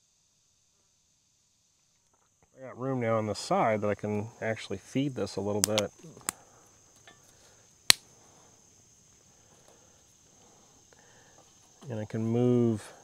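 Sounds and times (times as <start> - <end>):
crickets trilling: 0.0 - 13.0
wood popping in camp stove: 5.6 - 6.4.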